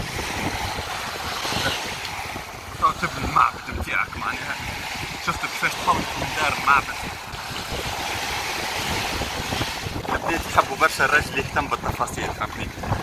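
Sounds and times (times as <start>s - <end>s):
surf: 0.0s - 13.0s
wind: 0.0s - 13.0s
voices: 2.8s - 4.6s.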